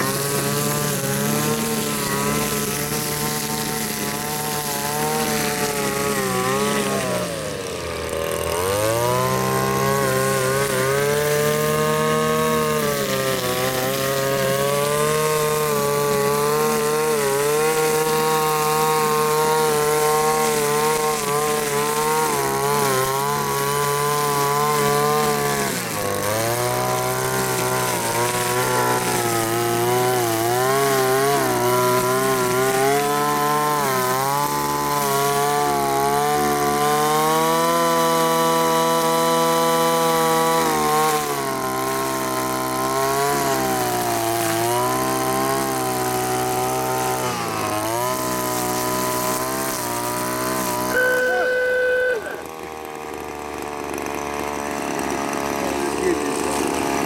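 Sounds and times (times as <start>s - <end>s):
string trimmer engine revving: 0.0s - 57.0s.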